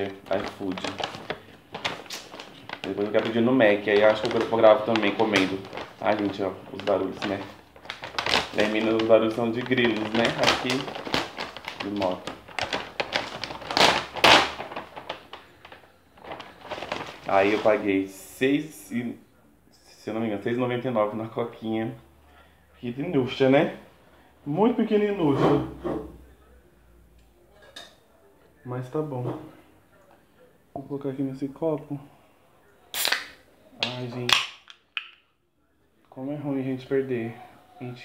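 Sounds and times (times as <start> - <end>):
paper bag rustling and crackling: 0.0 - 18.1.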